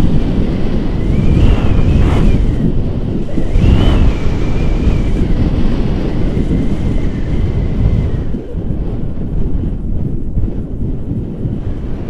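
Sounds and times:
wind rumble on microphone: 0:00.0 - 0:12.0
wavering high whistle: 0:01.0 - 0:02.7, 0:03.3 - 0:05.4.

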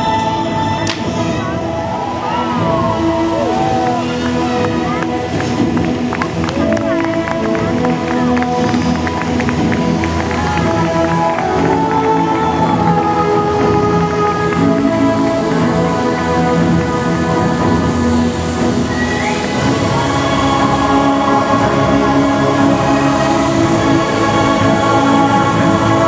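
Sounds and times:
music with long held chords: 0:00.0 - 0:26.0.

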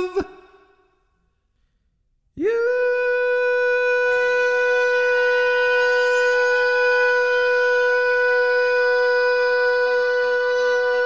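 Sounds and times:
man singing long held note: 0:00.0 - 0:00.7, 0:02.4 - 0:11.0.

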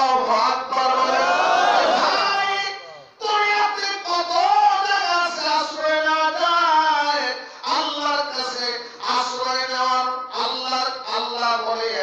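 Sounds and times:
man chanting: 0:02.0 - 0:12.0.

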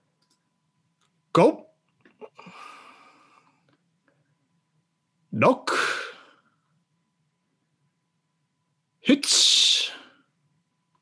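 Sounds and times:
thin steady hum: 0:00.0 - 0:11.0
person speaking a word: 0:09.1 - 0:10.1.

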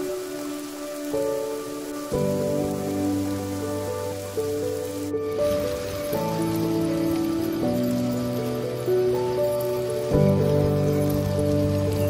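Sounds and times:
slow music of held notes: 0:00.0 - 0:12.0
steady rain: 0:00.0 - 0:12.0.

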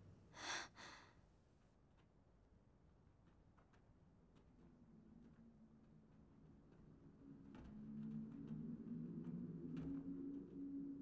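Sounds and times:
person exhaling breathily: 0:00.4 - 0:01.0.

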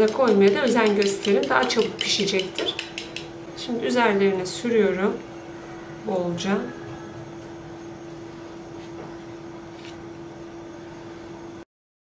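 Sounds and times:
steady low background hum: 0:00.0 - 0:11.6.

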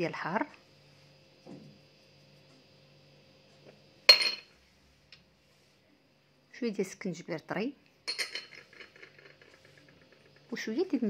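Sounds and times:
glass dish clinking: 0:04.1 - 0:04.5, 0:08.1 - 0:08.6.

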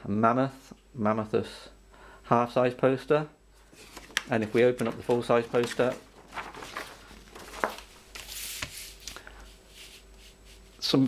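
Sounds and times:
paper sliding over table: 0:03.6 - 0:10.8.

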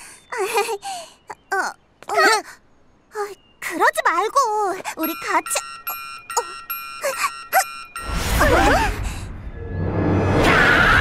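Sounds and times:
high ringing chime: 0:05.0 - 0:08.8.

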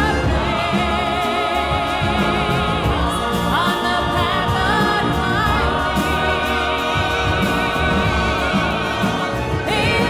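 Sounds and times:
choir singing with vibrato: 0:00.0 - 0:10.0
steady drum beat: 0:00.0 - 0:10.0
symphony orchestra: 0:00.0 - 0:10.0.

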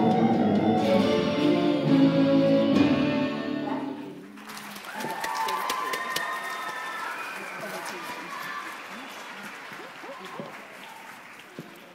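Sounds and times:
audience applause: 0:04.2 - 0:11.9.

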